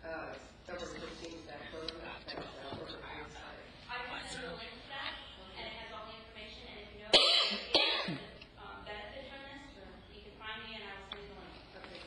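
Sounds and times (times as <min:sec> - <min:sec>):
person coughing: 0:07.1 - 0:08.4.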